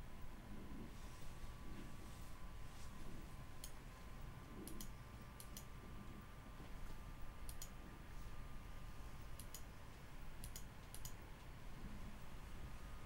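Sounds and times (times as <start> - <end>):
faint steady hum: 0.0 - 13.0
computer mouse clicking: 3.6 - 3.8, 4.5 - 5.8, 6.8 - 7.8, 9.3 - 9.8, 10.4 - 11.5.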